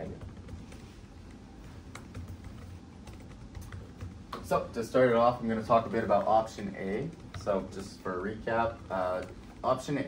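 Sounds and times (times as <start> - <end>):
low room hum: 0.0 - 10.0.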